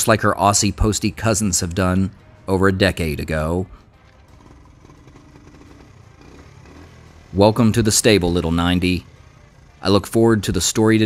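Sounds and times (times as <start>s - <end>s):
small motorbike engine running: 3.8s - 11.0s.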